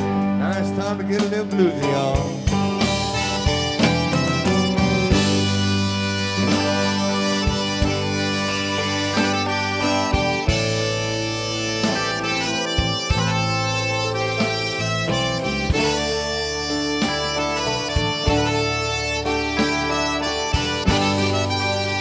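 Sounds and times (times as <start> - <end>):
button accordion: 0.0 - 22.0
drum beat: 0.0 - 22.0
electric bass: 0.0 - 22.0
live band playing: 0.0 - 22.0.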